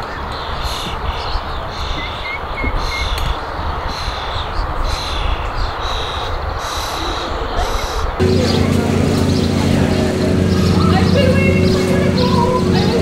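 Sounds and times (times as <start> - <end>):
steady low rumble: 8.2 - 13.0.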